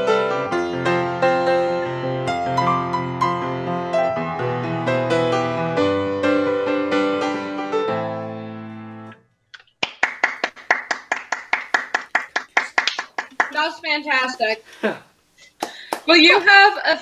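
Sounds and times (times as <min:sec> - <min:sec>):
quick hand clapping: 0:09.6 - 0:13.7, 0:15.6 - 0:16.1.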